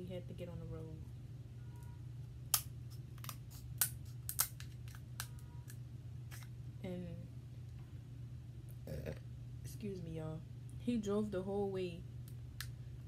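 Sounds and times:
steady low hum: 0.0s - 13.0s
scissors snipping crab shell: 2.5s - 5.4s.

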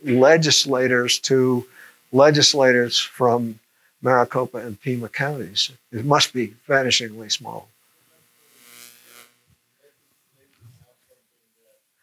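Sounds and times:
long breath out: 1.7s - 2.0s.

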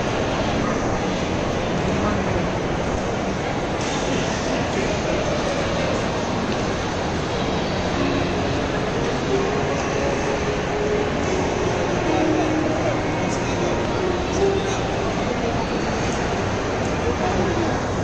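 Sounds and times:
indistinct crowd chatter: 0.0s - 18.0s.

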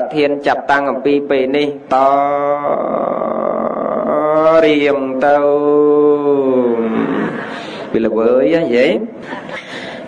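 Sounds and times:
man chanting long notes: 2.0s - 7.4s.

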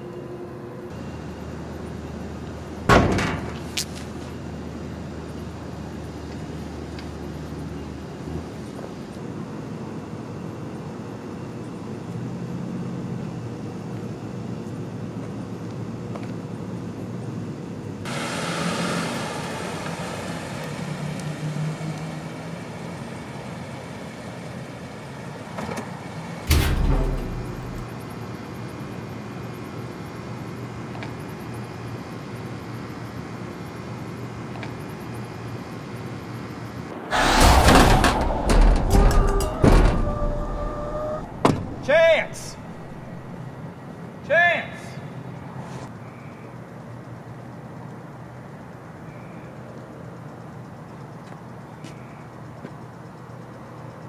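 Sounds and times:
low drone: 36.8s - 43.6s
heavy hit with deep boom: 37.1s - 43.4s.

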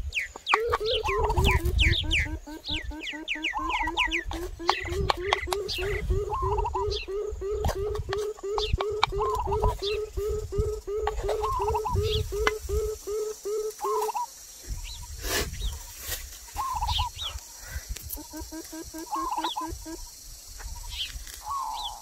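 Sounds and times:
birds warbling and chirping: 0.0s - 22.0s
bird hooting: 0.4s - 15.1s, 16.5s - 17.4s, 18.2s - 20.1s, 21.4s - 22.0s.

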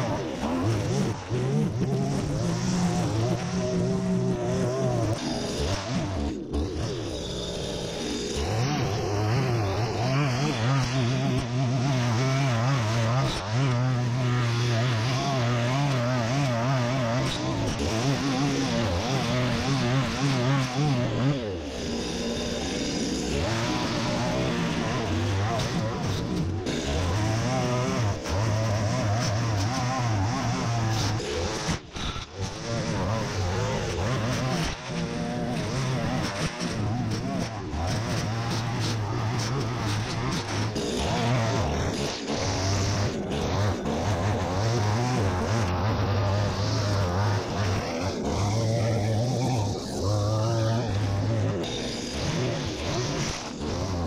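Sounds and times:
string trimmer cutting grass: 0.0s - 54.0s.

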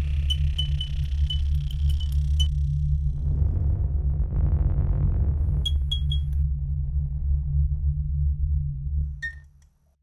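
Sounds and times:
deep bass drone: 0.0s - 9.8s.

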